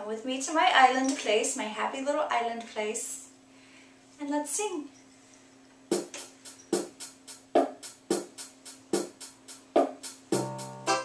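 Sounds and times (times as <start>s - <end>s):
drum machine beat: 5.9s - 11.0s.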